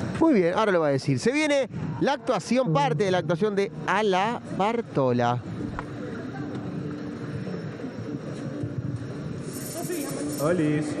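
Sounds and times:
faint indistinct voices: 5.4 - 11.0.

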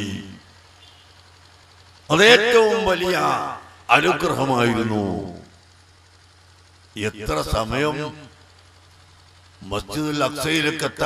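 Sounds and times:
man speaking: 0.0 - 0.4, 2.1 - 5.5, 7.0 - 8.3, 9.6 - 11.0
low electrical hum: 0.0 - 11.0.

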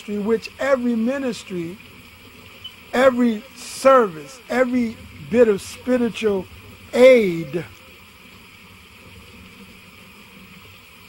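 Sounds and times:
low hiss and hum: 0.0 - 11.0.

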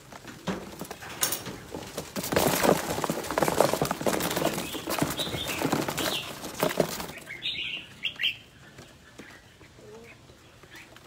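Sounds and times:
bird wings flapping: 0.0 - 7.5.

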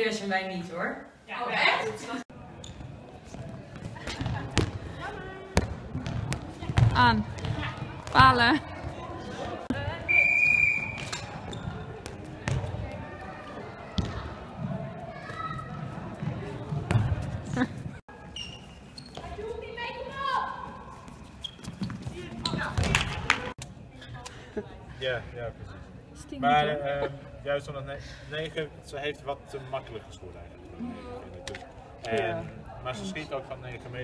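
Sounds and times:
brief high squeak: 18.3 - 19.2.

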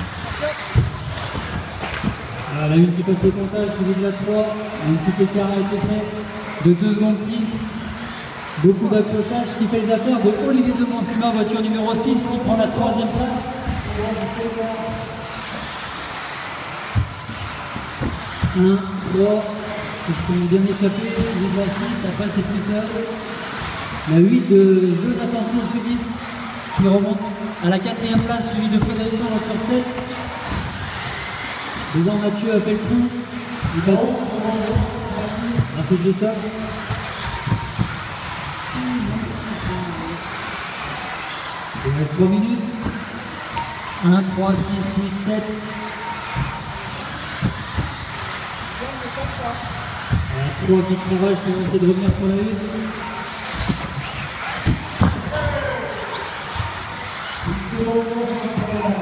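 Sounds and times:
model cars hissing on track: 3.7 - 59.0.

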